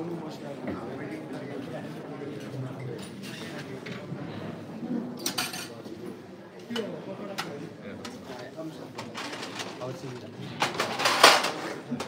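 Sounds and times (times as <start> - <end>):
background chatter of people: 0.0 - 12.0.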